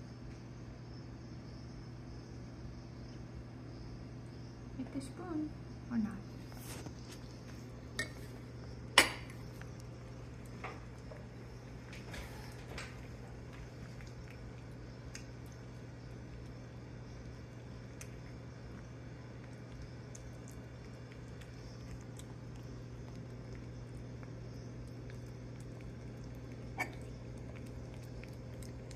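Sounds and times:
steady low hum: 0.0s - 28.9s
cat eating wet food: 6.4s - 28.9s
spoon clinking on ceramic dish: 8.0s - 8.2s.

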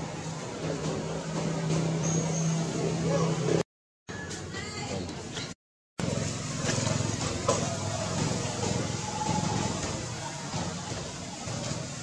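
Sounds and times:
noisy wash: 0.0s - 3.6s, 6.0s - 12.0s.

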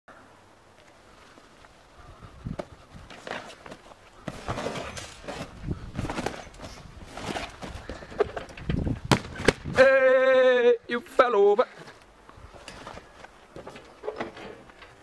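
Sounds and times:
bouncing on trampoline: 2.6s - 9.7s.

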